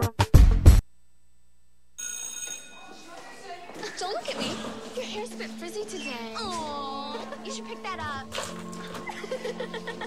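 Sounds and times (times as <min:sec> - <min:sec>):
electric school bell ringing: 0:02.0 - 0:03.2.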